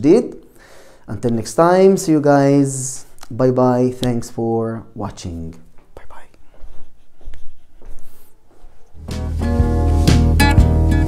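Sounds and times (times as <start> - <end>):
soft footsteps: 5.5 - 9.2.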